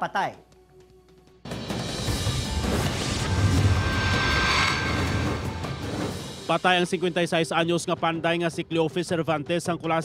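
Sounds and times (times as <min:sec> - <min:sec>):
news bumper music: 0:01.5 - 0:06.6
rushing rumbling whoosh: 0:02.0 - 0:06.7
crash-like hit: 0:02.4 - 0:06.5.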